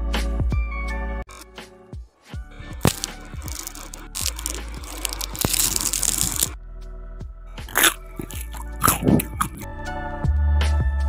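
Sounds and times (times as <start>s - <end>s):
background music: 2.4s - 10.8s
crisps crunching: 2.8s - 6.6s, 7.7s - 9.7s.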